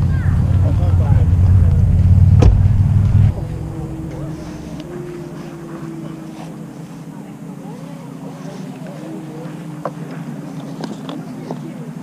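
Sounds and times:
low rumble on microphone: 0:00.0 - 0:07.1
distant engine hum: 0:00.0 - 0:12.0.

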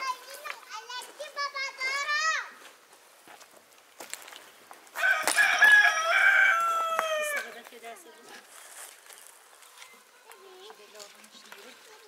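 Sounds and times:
rooster crowing: 0:05.0 - 0:07.5.

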